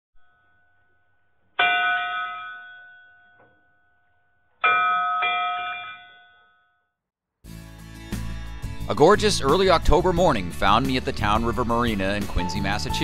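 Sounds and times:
bell-like chime: 0:04.6 - 0:06.9.

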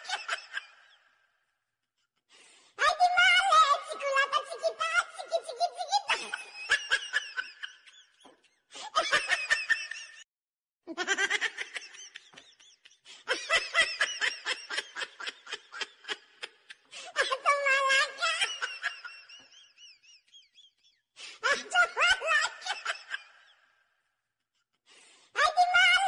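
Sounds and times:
people laughing: 0:00.0 - 0:01.0, 0:04.8 - 0:10.2, 0:10.9 - 0:23.6.

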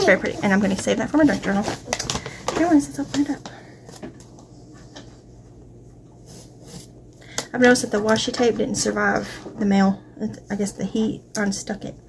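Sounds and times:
paper packet rustling: 0:00.0 - 0:03.5.

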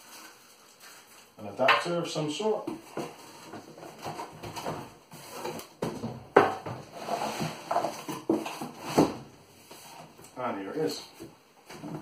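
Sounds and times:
cardboard rustling and scraping: 0:02.7 - 0:10.2.

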